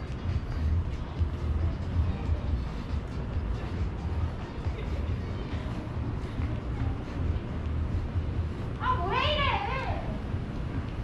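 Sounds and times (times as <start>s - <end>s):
pulsing low rumble: 0.0s - 8.8s
street hiss: 0.0s - 11.0s.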